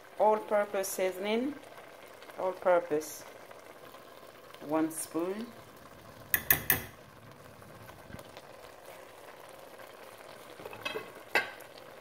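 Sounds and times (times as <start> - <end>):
stew simmering in a pot: 0.0 - 12.0
sharp knocks against cooking pot: 6.3 - 7.0.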